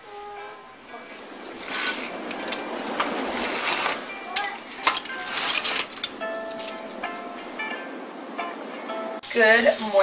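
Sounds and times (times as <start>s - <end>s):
fabric rustling: 0.9s - 7.0s.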